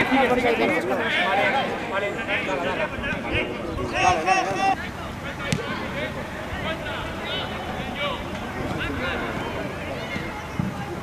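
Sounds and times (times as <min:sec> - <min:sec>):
people shouting and calling out: 0:00.0 - 0:10.9.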